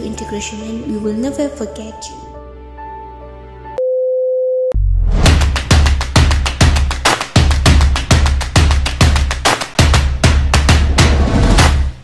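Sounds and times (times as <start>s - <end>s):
drum-driven music: 5.0s - 12.0s.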